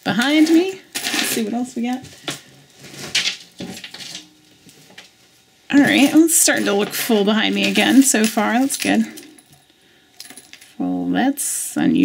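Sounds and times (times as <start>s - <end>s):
metal chains clinking on wood: 0.1s - 1.7s, 5.7s - 10.8s.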